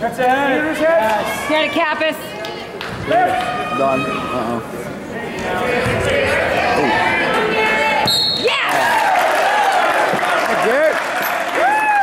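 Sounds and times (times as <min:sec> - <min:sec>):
referee's whistle blast: 0:08.0 - 0:08.6.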